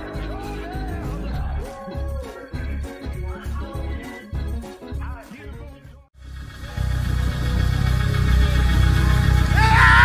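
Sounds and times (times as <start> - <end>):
bass-heavy live church music: 0.0 - 10.0
man shouting into a microphone: 9.6 - 10.0.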